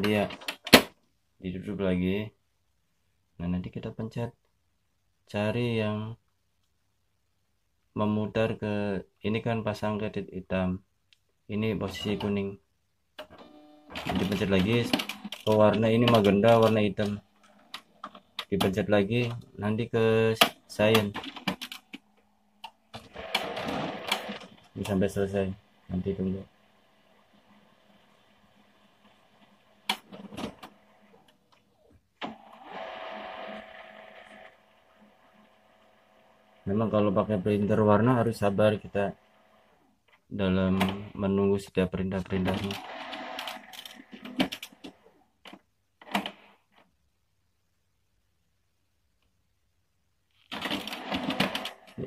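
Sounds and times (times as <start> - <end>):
printer mechanical whir with clicks: 13.2 - 18.8, 22.6 - 25.0
printer mechanical clicks and clacks: 13.2 - 19.5, 20.3 - 22.0, 22.6 - 25.2, 29.4 - 31.3, 42.3 - 46.5, 50.5 - 52.0.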